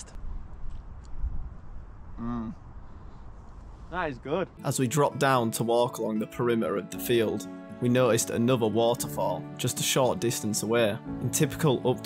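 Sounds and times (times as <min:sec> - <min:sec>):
wind buffeting microphone: 0:00.1 - 0:04.0.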